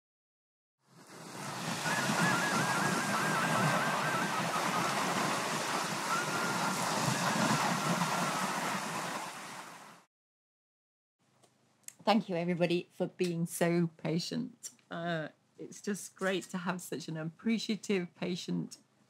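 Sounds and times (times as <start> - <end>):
sea waves washing on shore: 0.9 - 10.1
high warbling whistle: 1.5 - 8.8
steady high whistle: 1.7 - 8.6.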